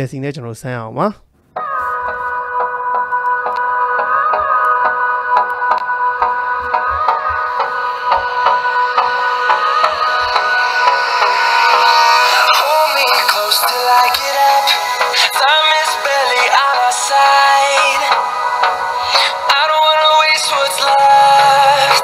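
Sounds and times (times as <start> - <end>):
pop song through phone speaker: 1.5 - 22.0.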